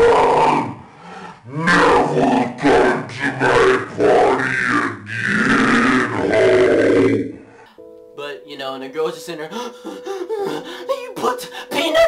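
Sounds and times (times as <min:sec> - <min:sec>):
man growling and roaring: 0:00.0 - 0:07.5.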